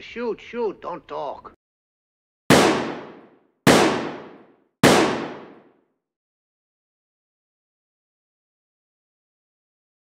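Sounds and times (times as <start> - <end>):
gunshots with echoing decay: 2.5 - 5.8.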